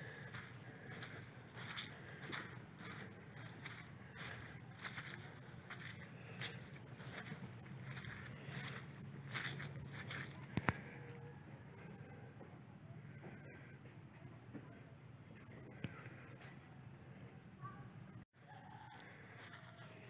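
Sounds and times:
footsteps on grass: 0:00.0 - 0:11.0, 0:18.4 - 0:20.0
distant chickens clucking: 0:00.0 - 0:14.3, 0:18.4 - 0:20.0.

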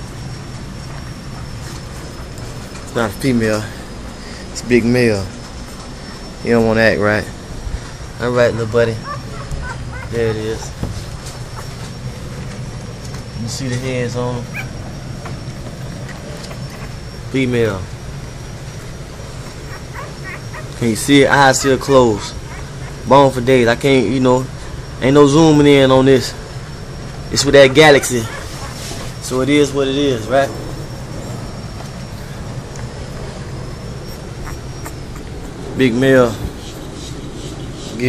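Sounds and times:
low rumble and hiss: 0:00.0 - 0:38.0.

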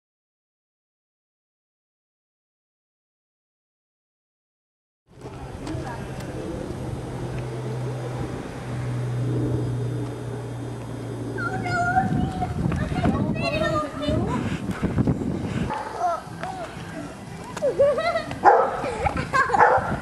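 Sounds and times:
steady low hum: 0:05.1 - 0:20.0
child calling out: 0:11.4 - 0:14.3
footsteps: 0:12.1 - 0:19.5.

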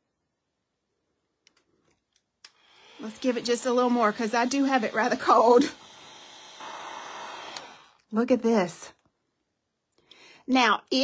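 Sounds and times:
hair dryer blowing: 0:02.5 - 0:08.0.

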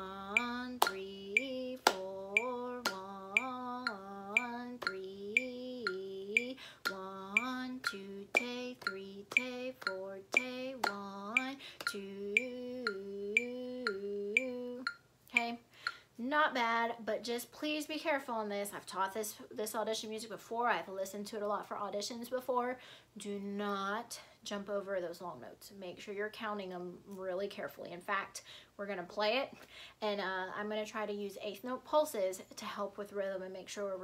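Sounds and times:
woman counting in sing-song voice: 0:00.0 - 0:15.7
metronome clicks: 0:00.3 - 0:16.0.

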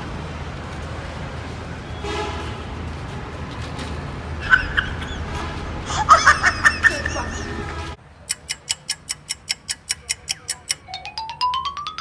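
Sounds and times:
clock ticking: 0:08.2 - 0:12.0
rising pitched ticks: 0:08.3 - 0:12.0.

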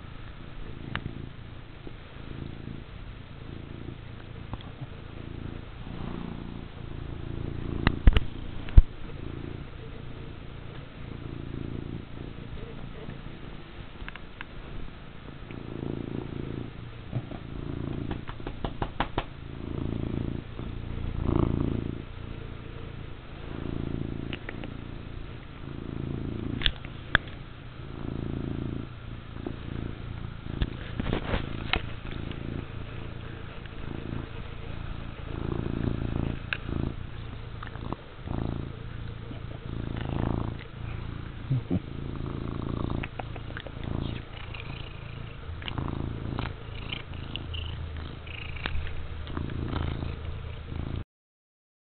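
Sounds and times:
cat purring: 0:00.0 - 0:51.0.

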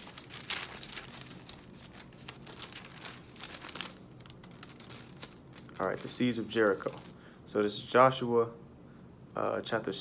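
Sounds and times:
book pages rustling: 0:00.0 - 0:07.2.

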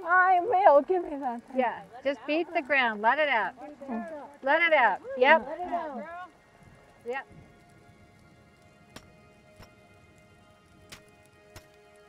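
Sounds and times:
light rain pattering: 0:00.0 - 0:12.0
soft sustained music: 0:00.0 - 0:12.0.

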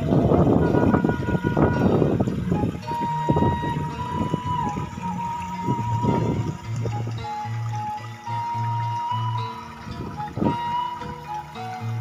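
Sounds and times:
bamboo flute long note: 0:00.0 - 0:12.0.

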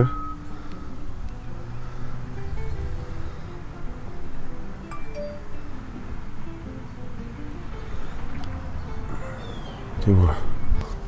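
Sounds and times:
melody of short notes: 0:00.0 - 0:09.6
low rumble: 0:01.0 - 0:04.9.

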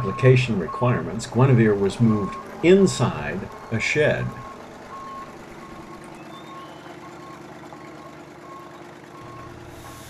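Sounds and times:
tractor engine running: 0:00.0 - 0:10.0
reversing alarm beeps: 0:04.3 - 0:07.4, 0:08.0 - 0:10.0.

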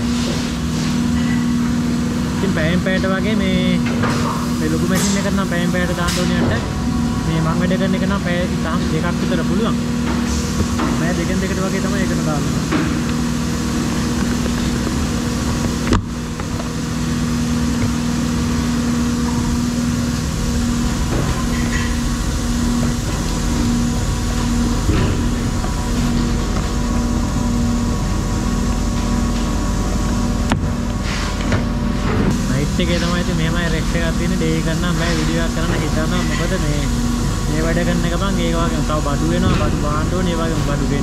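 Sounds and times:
machinery drone: 0:00.0 - 0:41.0.

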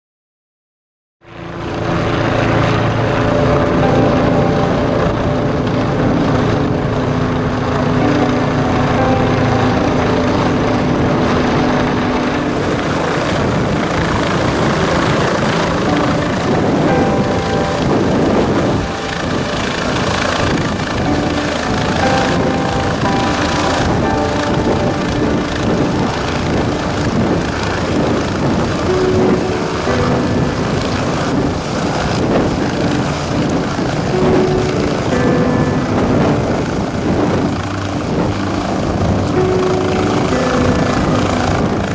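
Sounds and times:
helicopter rotor and engine: 0:01.3 - 0:41.9.

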